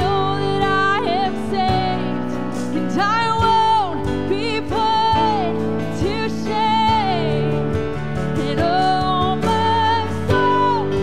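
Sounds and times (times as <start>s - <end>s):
acoustic guitar: 0.0s - 11.0s
keyboard playing: 0.0s - 11.0s
woman singing: 0.0s - 11.0s.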